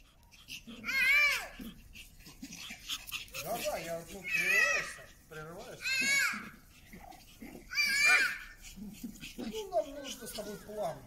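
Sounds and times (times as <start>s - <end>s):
small dog yelping: 0.0s - 11.0s.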